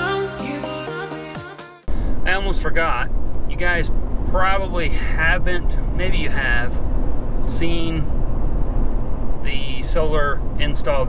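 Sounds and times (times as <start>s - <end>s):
road and engine drone: 1.9s - 11.0s
man speaking: 2.2s - 6.8s, 7.5s - 8.1s, 9.5s - 11.0s.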